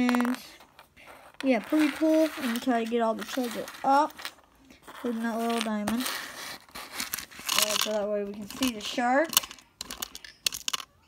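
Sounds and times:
plastic bricks clicking: 0:00.0 - 0:06.0, 0:06.8 - 0:11.0
plastic bricks rustling: 0:00.0 - 0:11.0.

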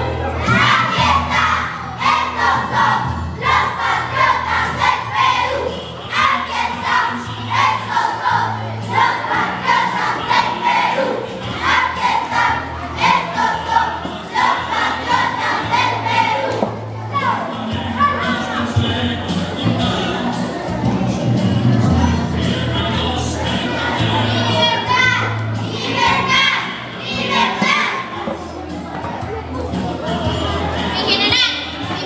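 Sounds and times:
children singing in unison: 0:00.0 - 0:28.6
backing music with low bass: 0:00.0 - 0:32.0.

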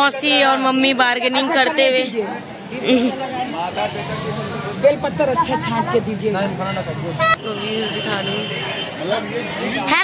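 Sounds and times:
traffic murmur: 0:00.0 - 0:10.0.

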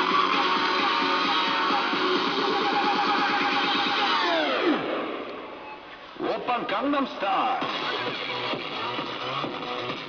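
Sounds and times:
song with tape-stop effect: 0:00.0 - 0:05.4, 0:07.6 - 0:10.0
song playing: 0:00.0 - 0:05.6, 0:07.0 - 0:10.0.

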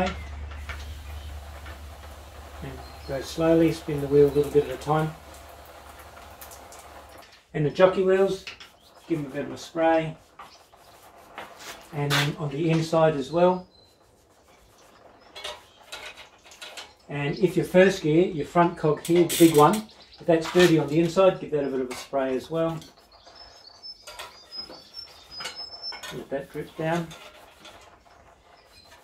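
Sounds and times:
pump sprayer hissing: 0:00.0 - 0:07.2.

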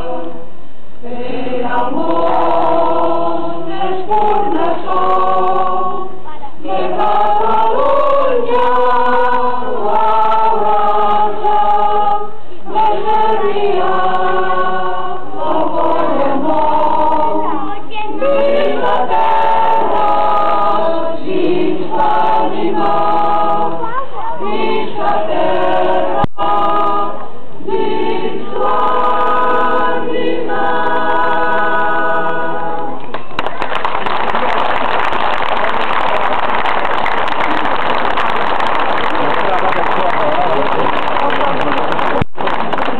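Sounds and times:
choir singing a hymn: 0:00.0 - 0:33.1
voices: 0:22.9 - 0:27.0
audience clapping: 0:33.0 - 0:42.9.

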